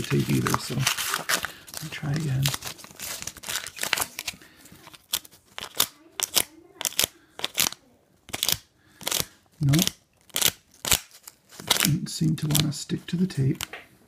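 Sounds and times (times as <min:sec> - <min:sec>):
tape peeling off tile crackles: 0:00.0 - 0:12.7.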